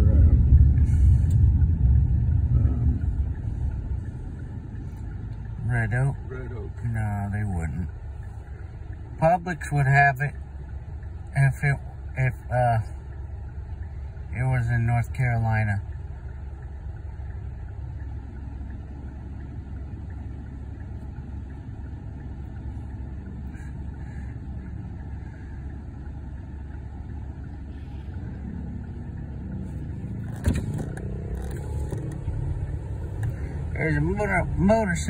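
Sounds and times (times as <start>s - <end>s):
car engine from inside cabin: 0.0s - 35.0s.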